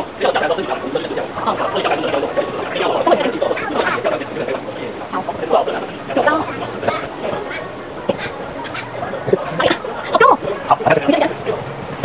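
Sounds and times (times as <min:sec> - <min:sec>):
indistinct voices talking: 0:00.0 - 0:12.0.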